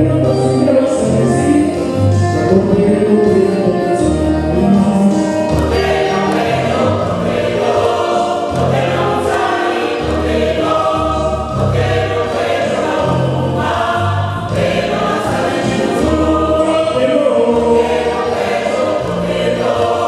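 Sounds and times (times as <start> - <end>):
mixed choir singing gospel: 0.0 - 20.0
deep bass line: 1.0 - 7.7, 13.0 - 18.2.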